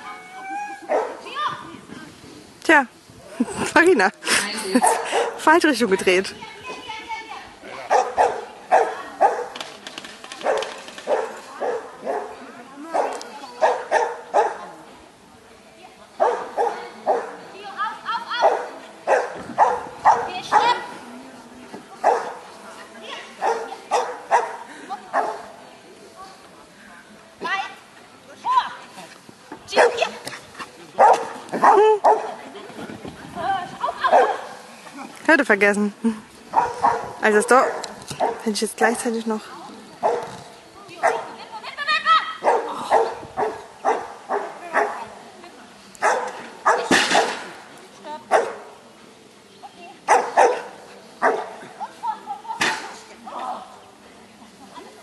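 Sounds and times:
dog barking: 0.9 - 1.2, 4.9 - 5.4, 7.9 - 9.6, 10.4 - 14.6, 16.2 - 17.4, 18.4 - 20.8, 22.0 - 22.4, 23.4 - 24.6, 29.7 - 30.1, 31.0 - 32.3, 34.1 - 34.4, 36.5 - 38.4, 40.0 - 40.3, 41.0 - 41.3, 42.4 - 45.0, 46.0 - 47.3, 48.3 - 48.6, 50.1 - 51.6.

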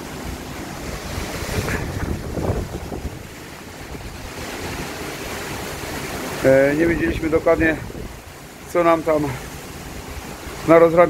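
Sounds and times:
storm wind rushing through trees: 0.0 - 11.0
wind buffeting microphone: 0.1 - 10.6.

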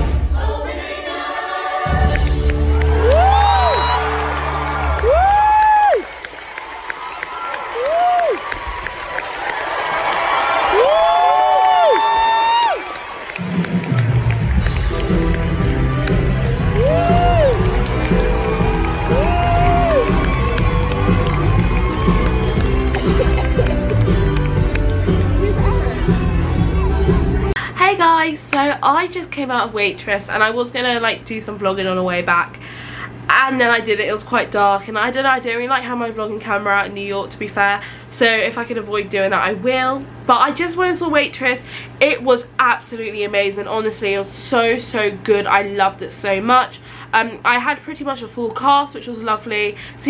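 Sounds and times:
audience cheering and clapping: 1.2 - 27.6
bass: 1.9 - 6.0, 13.4 - 28.2
whooping: 2.6 - 13.4, 16.4 - 24.6
live band playing: 13.4 - 27.6.

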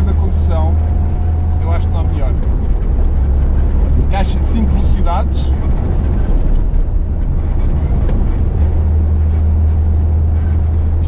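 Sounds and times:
car engine drone from cabin: 0.0 - 11.0.

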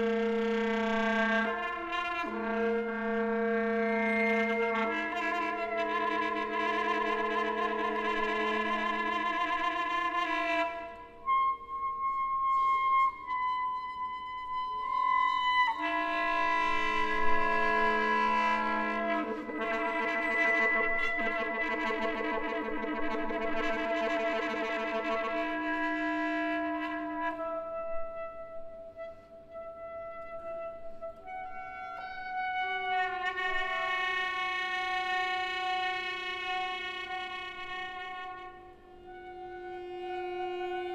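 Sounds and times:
alto saxophone sustained notes: 0.0 - 40.9.

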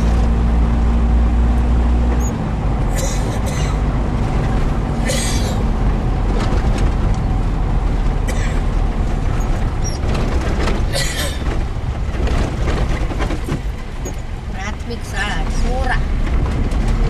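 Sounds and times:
car engine rumble: 0.0 - 17.0
tyres on dirt road: 0.0 - 17.0.

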